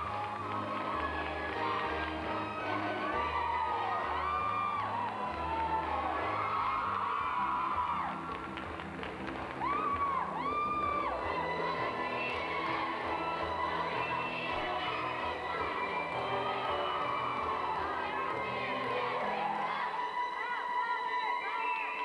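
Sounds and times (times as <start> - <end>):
high voices whooping: 0.0 - 8.2
dance music: 0.0 - 21.6
crowd cheering: 0.0 - 22.0.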